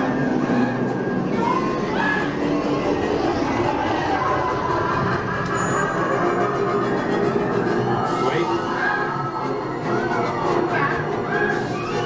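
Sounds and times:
theme park ride music over speakers: 0:00.0 - 0:12.0.

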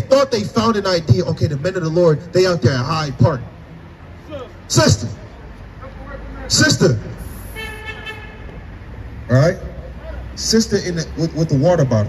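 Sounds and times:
street traffic rumble: 0:00.0 - 0:12.0
vehicle horn: 0:07.2 - 0:08.7.

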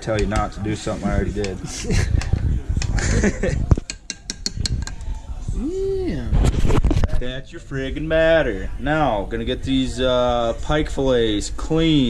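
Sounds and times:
laughter: 0:01.6 - 0:03.8
spoon clinking ceramic dish: 0:03.8 - 0:05.0.

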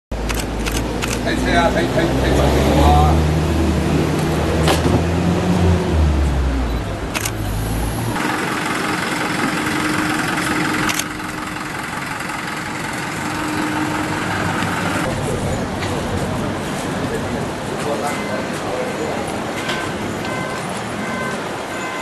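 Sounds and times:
street background: 0:00.1 - 0:22.0
sharp clicks: 0:00.2 - 0:01.2, 0:07.1 - 0:07.4, 0:10.8 - 0:11.2
vehicle engine idling: 0:06.5 - 0:17.4.

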